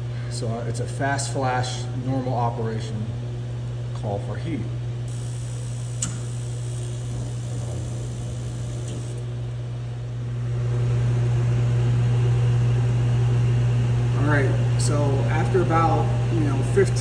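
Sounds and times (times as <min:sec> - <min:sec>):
heater blower humming: 0:04.5 - 0:17.0.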